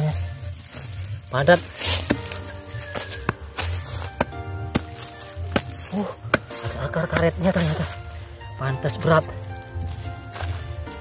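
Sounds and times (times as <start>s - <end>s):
background music: 0.0s - 11.0s
hand tool chopping into hard soil: 1.3s - 11.0s.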